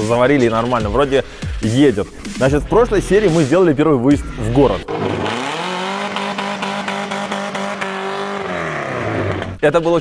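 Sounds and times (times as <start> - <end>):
car engine at high revs: 4.8 - 9.6.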